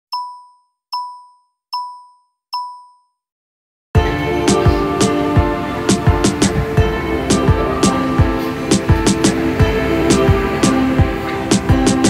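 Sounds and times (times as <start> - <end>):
short electronic dings: 0.1 - 3.2
music: 4.0 - 12.0.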